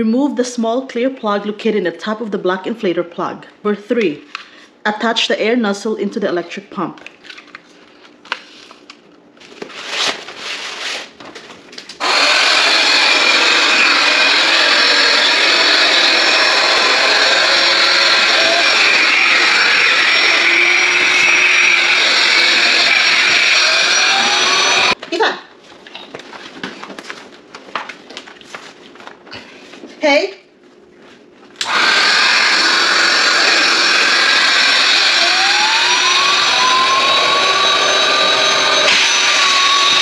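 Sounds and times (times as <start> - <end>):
electric air pump running: 12.0 - 25.0, 31.6 - 40.0.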